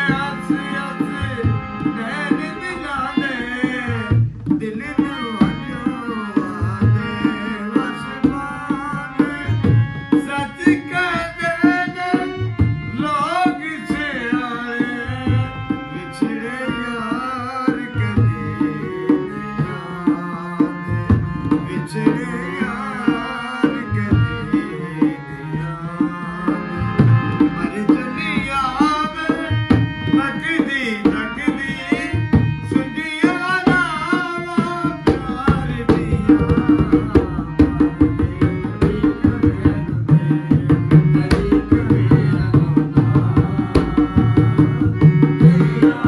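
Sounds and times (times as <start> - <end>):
harmonium: 0.0 - 46.0
hand drum beat: 33.2 - 46.0
person singing ornamented phrases: 41.2 - 44.5.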